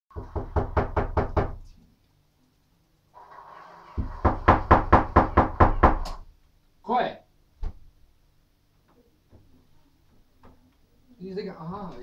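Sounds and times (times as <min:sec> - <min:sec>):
rapid knocking: 0:04.0 - 0:06.1.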